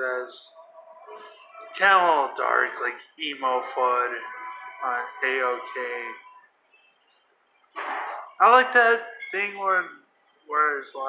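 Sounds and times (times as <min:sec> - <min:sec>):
man speaking: 0:00.0 - 0:00.6, 0:01.6 - 0:06.3, 0:08.4 - 0:11.0.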